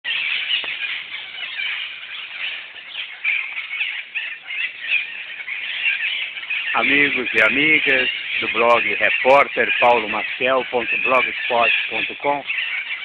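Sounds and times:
parrots squawking: 0.1s - 13.0s.

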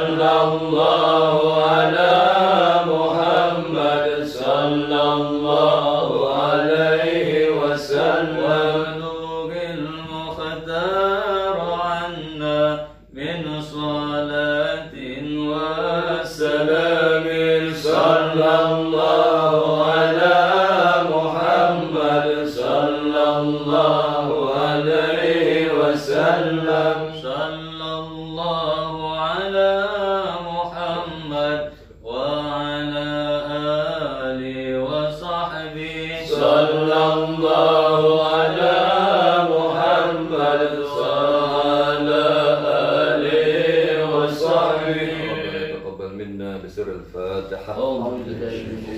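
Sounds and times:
men chanting: 0.0s - 46.8s, 47.4s - 48.9s.

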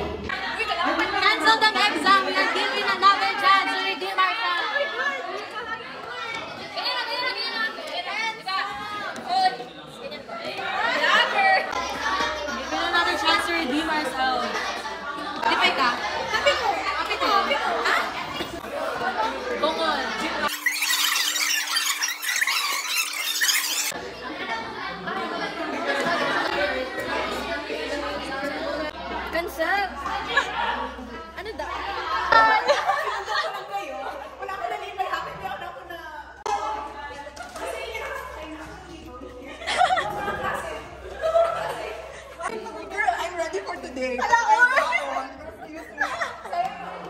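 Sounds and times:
women chattering: 0.4s - 47.0s.

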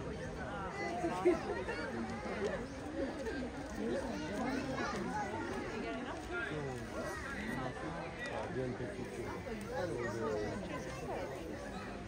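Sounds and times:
babble of overlapping voices: 0.0s - 12.0s.

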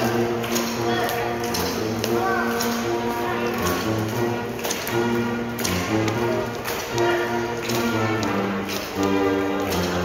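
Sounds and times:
brass instruments: 0.0s - 10.0s
pipe band melody: 0.0s - 10.0s.

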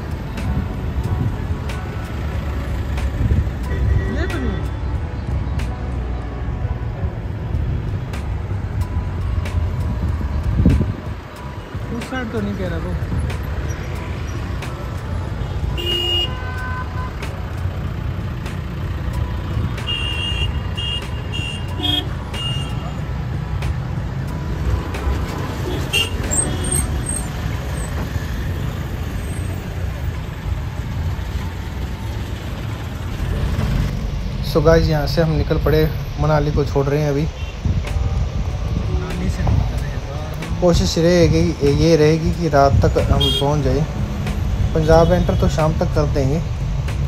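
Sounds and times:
car engine and tyres rumbling: 0.0s - 47.0s
car horns honking: 15.4s - 17.3s, 19.6s - 23.1s, 25.5s - 27.9s, 43.1s - 43.7s.

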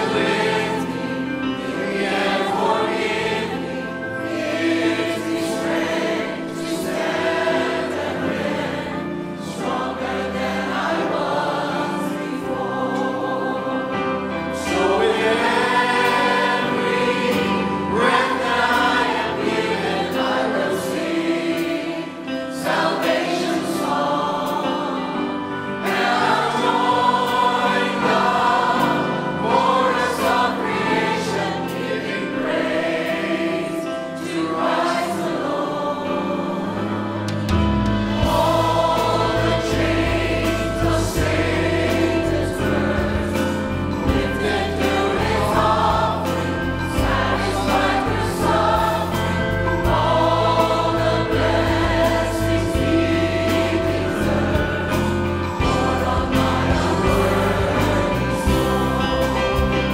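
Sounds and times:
mixed choir singing a hymn: 0.0s - 59.9s.

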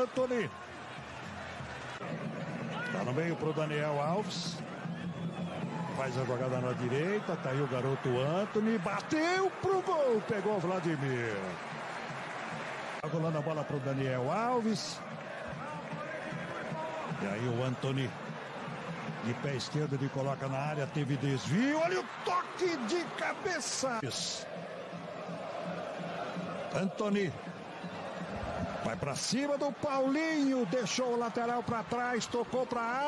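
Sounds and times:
stadium crowd noise: 0.0s - 33.0s
commentator speaking: 6.0s - 11.6s, 19.2s - 24.5s, 28.8s - 33.0s.

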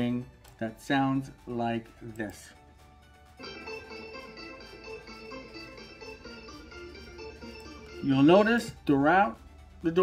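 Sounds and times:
electronic ringtone melody: 3.3s - 8.6s.

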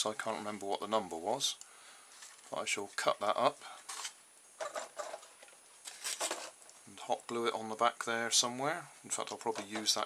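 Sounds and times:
plastic and cardboard handling: 3.8s - 6.7s
rustling scrape: 3.8s - 6.7s.

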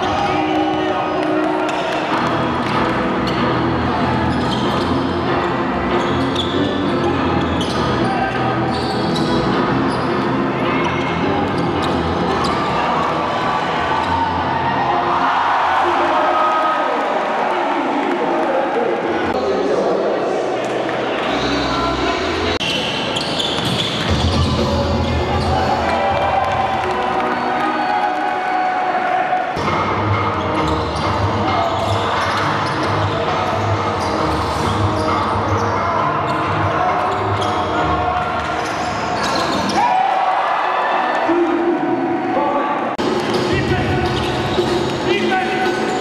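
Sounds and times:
music: 0.0s - 16.0s, 20.8s - 22.6s, 23.6s - 28.9s, 29.5s - 40.1s, 43.0s - 46.0s
voices in hall: 0.0s - 46.0s.

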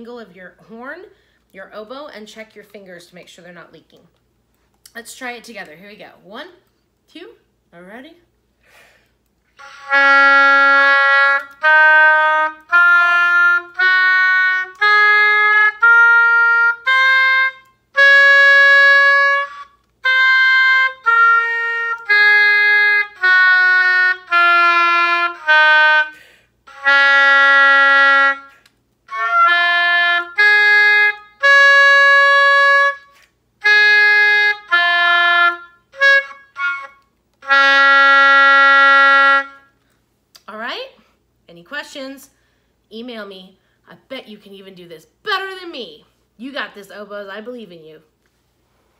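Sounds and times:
oboe playing scale: 9.5s - 39.7s.

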